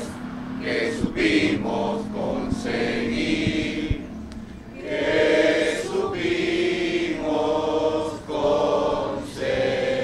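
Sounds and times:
group of people singing: 0.0 - 10.0.

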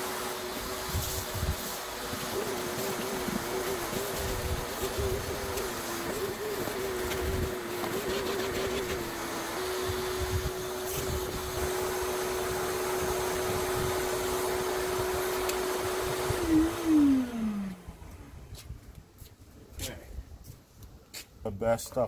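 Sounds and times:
vacuum motor spinning down: 0.0 - 18.4
shop vacuum running: 0.0 - 18.7.

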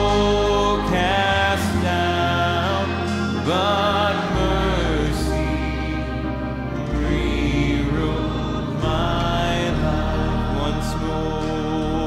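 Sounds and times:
steady bass: 0.0 - 12.0
sustained organ chords: 0.0 - 12.0.

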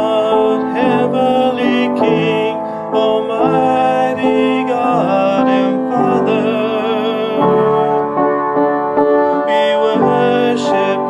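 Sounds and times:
instrumental accompaniment: 0.0 - 11.0
man singing: 0.0 - 11.0.

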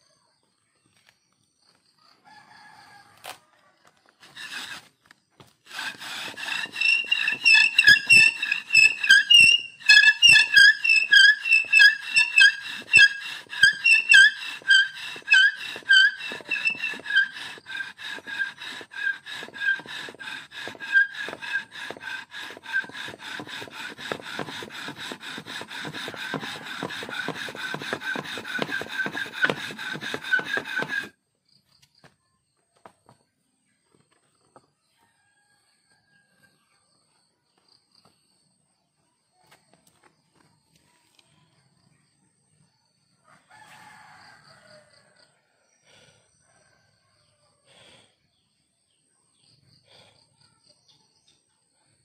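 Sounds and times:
bow drill spindle squeaking: 4.2 - 31.2.

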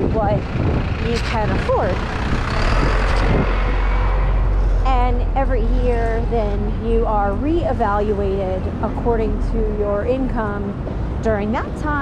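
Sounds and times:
truck passing close by: 0.0 - 10.9
street traffic: 0.0 - 12.0.

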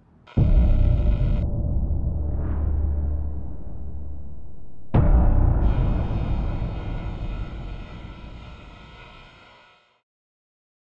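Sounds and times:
heavy boom with low rumble: 0.3 - 9.2.

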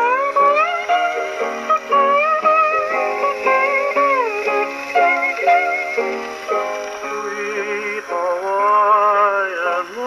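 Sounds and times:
hawaiian guitar music on gramophone: 0.0 - 10.0.

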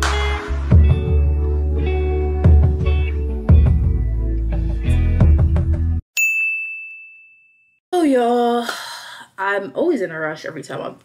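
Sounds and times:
intro music with strummed beat: 0.0 - 6.0.

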